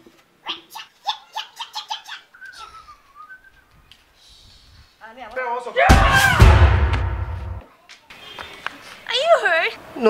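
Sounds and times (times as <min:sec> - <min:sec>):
thin whistle: 0:02.3 - 0:03.7.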